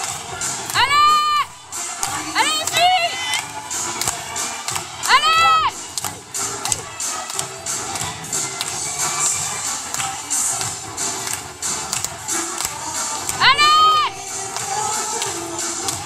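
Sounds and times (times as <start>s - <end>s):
crowd cheering: 0.0s - 16.0s
dance music with steady beat: 0.0s - 16.0s.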